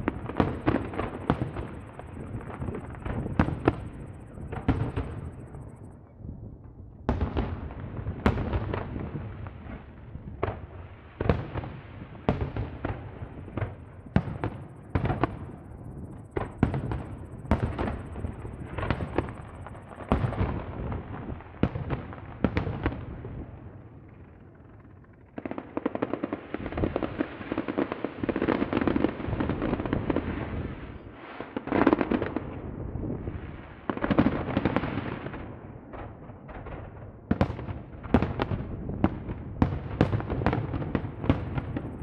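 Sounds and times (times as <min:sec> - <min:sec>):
fireworks crackling: 0:00.0 - 0:06.0, 0:06.7 - 0:42.0.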